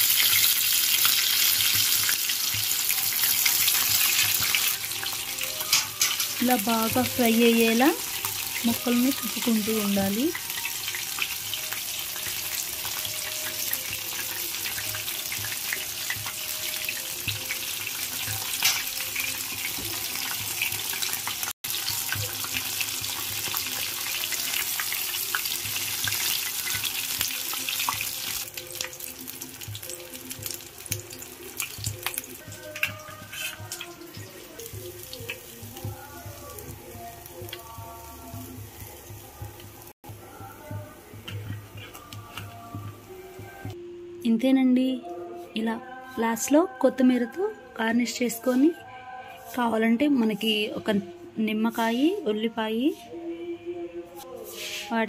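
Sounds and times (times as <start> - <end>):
chicken deep-frying in oil: 0.0 - 42.5
faint background music: 0.0 - 55.0.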